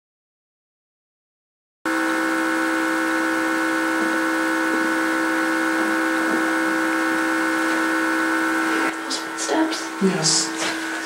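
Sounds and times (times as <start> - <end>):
buzzing hum: 1.9 - 11.0.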